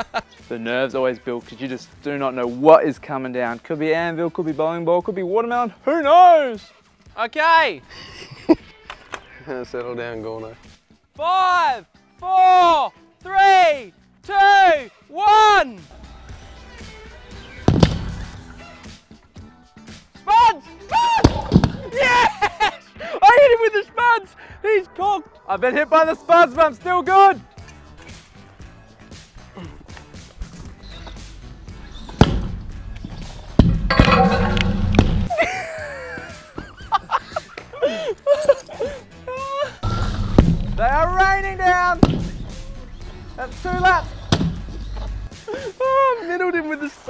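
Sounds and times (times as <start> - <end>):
background music: 0.0 - 47.0
men yelling and laughing: 20.2 - 25.0, 35.3 - 39.9, 45.0 - 46.9
long drawn-out shout: 20.4 - 21.3
object hitting sandy ground: 33.6 - 35.3, 42.0 - 42.5.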